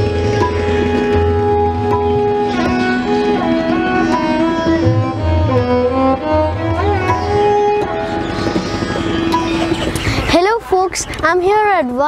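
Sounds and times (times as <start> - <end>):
bamboo flute melody: 0.0 - 10.2
violin melody: 0.0 - 10.3
tabla strokes: 0.0 - 10.4.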